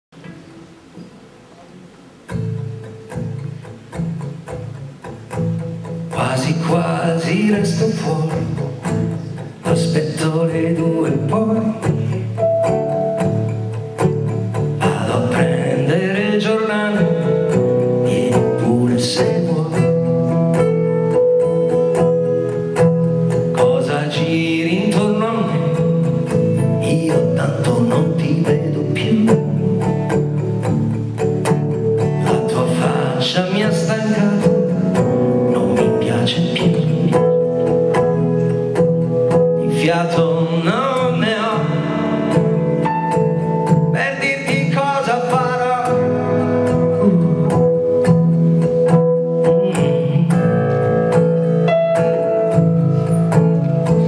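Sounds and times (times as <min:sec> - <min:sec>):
acoustic guitar strumming chords: 0:00.2 - 0:54.0
man singing: 0:06.1 - 0:12.6, 0:14.7 - 0:20.6, 0:23.4 - 0:30.2, 0:32.0 - 0:37.6, 0:39.5 - 0:48.0, 0:49.4 - 0:51.2.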